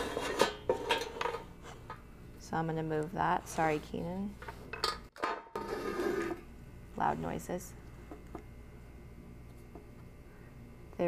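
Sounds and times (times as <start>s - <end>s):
tray scraping on table: 5.5s - 6.5s.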